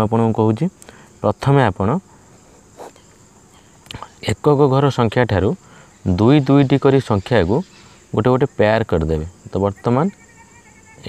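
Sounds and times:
pen stroke on paper: 2.8 - 3.0.

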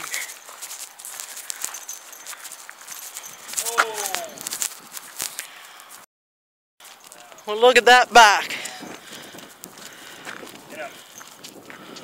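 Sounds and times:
footsteps on gravel: 0.0 - 6.0, 6.8 - 12.0
horse hooves on gravel: 0.0 - 6.0, 6.8 - 12.0
person calling out: 3.6 - 4.4.

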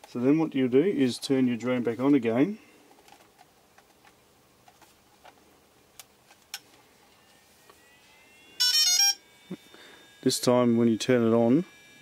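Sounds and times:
faint rising tone: 6.8 - 12.0.

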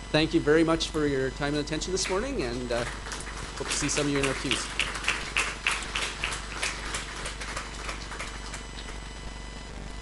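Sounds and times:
steady background hum: 0.0 - 10.0
audience applauding: 1.9 - 9.1.

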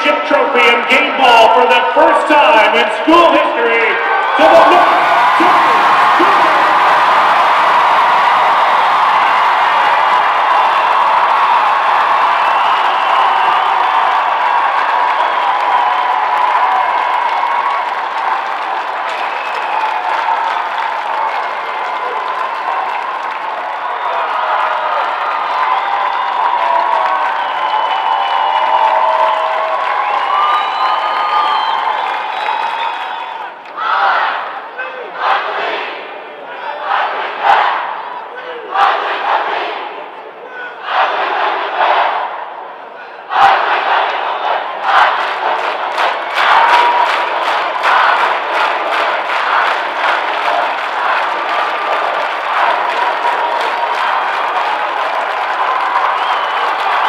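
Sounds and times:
crowd cheering and shouting: 0.0 - 57.0
loud group shouts: 2.0 - 31.5, 33.0 - 42.4, 43.0 - 57.0.

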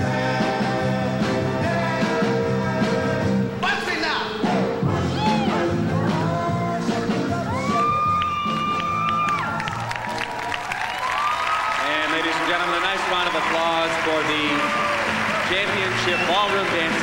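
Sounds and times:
swing dance music: 0.0 - 10.3, 11.8 - 17.0
audience cheering and whooping: 5.0 - 16.8.

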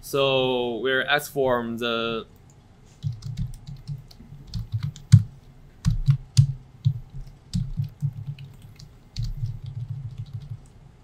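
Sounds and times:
computer keyboard typing: 2.4 - 10.7.

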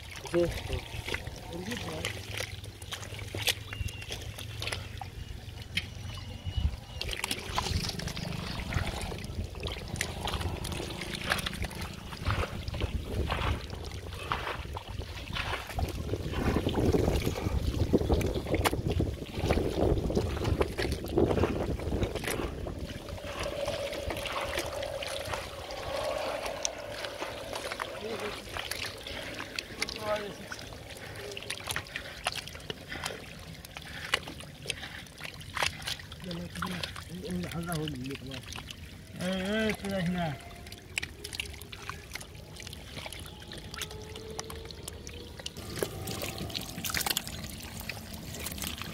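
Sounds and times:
hands squelching in wet mud: 0.0 - 48.9
water trickling: 0.0 - 48.9.

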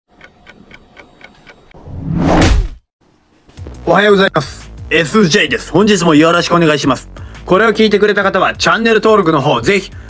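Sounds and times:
clock ticking: 0.1 - 1.8
rising whoosh: 1.8 - 2.8.

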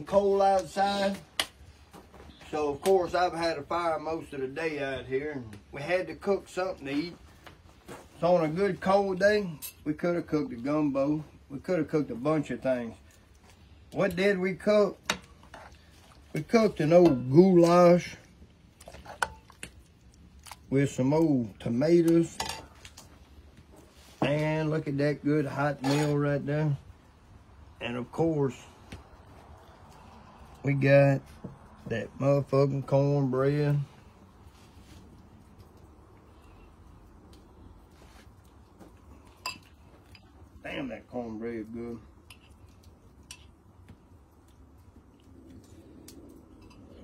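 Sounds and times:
wet plops of stew: 14.9 - 20.8.

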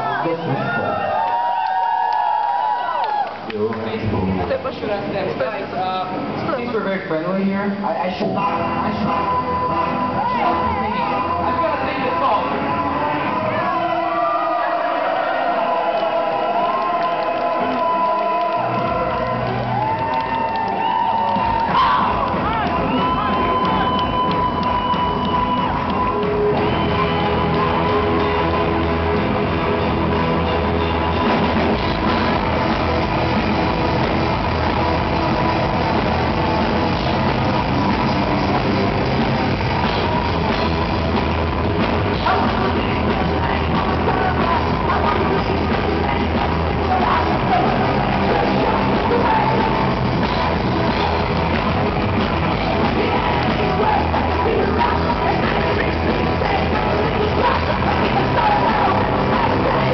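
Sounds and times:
crowd cheering: 0.0 - 4.2, 9.0 - 59.9
live band playing: 4.0 - 59.9
bass guitar: 7.8 - 59.9
electric guitars: 7.8 - 59.9
drum kit: 15.4 - 59.9.

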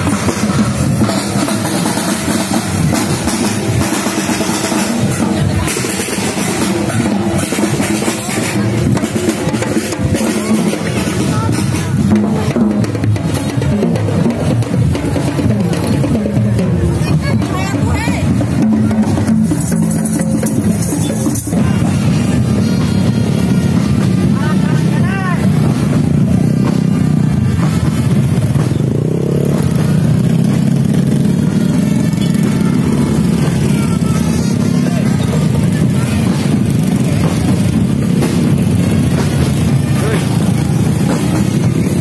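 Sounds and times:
crowd talking: 0.0 - 42.0
drum band music: 0.0 - 42.0
motorcycle engines running: 0.0 - 42.0.

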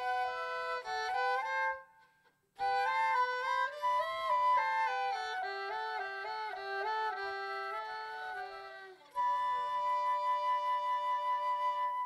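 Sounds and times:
flute: 0.0 - 12.0
violin: 0.0 - 12.0.

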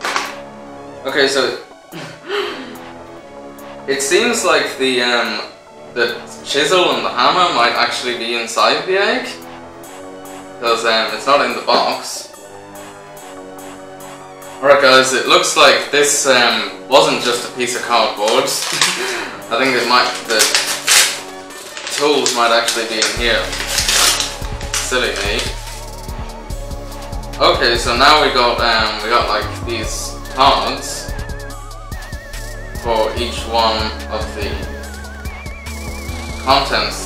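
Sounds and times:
music with sustained notes: 0.0 - 37.0
cardboard ripping and crackling: 18.5 - 19.1, 19.8 - 25.9
cardboard handling: 19.9 - 25.6.

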